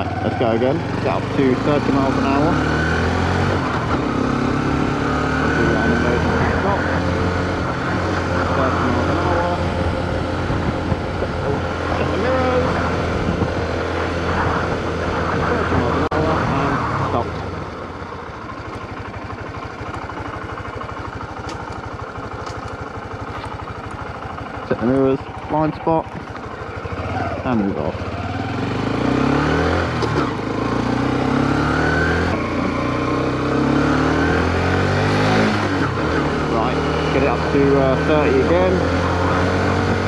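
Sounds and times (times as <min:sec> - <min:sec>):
motorcycle engine idling: 0:00.0 - 0:31.5
motorcycle engine accelerating: 0:00.0 - 0:40.0
wind rush on microphone: 0:08.8 - 0:17.2.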